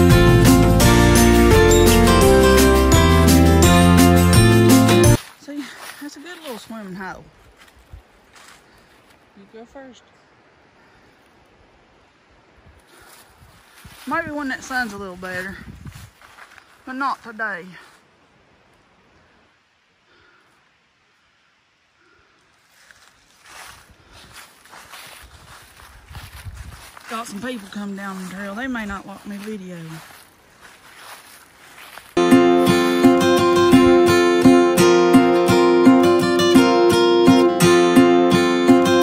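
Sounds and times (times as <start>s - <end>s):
rustling and scuffing on trail: 5.0s - 9.7s, 12.7s - 18.1s, 22.5s - 32.8s
steady background hiss: 16.2s - 23.8s.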